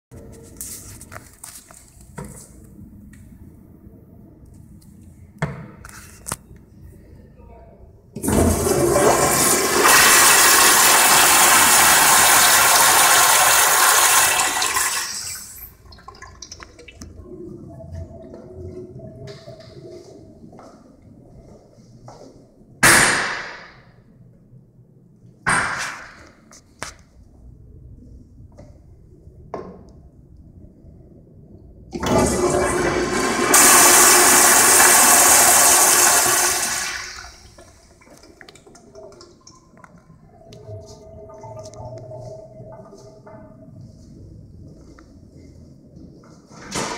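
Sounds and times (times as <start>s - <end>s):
toilet flushing: 8.2s - 17.1s, 31.9s - 43.3s.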